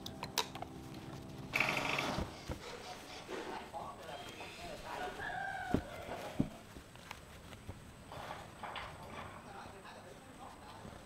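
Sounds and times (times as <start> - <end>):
fabric rustling and swishing: 0.8 - 8.6.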